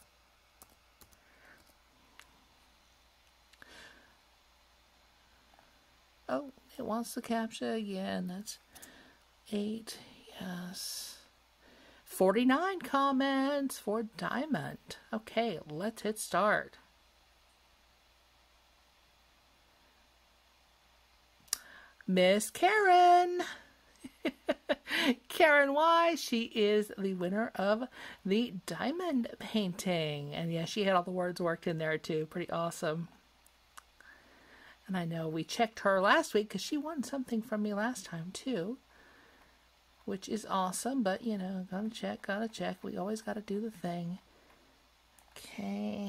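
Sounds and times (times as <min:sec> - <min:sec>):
faint breathy hiss: 0:00.0 - 0:06.9, 0:08.4 - 0:12.2, 0:16.8 - 0:22.1, 0:22.9 - 0:25.4, 0:27.8 - 0:28.3, 0:33.0 - 0:34.9, 0:38.8 - 0:40.1, 0:44.2 - 0:46.0.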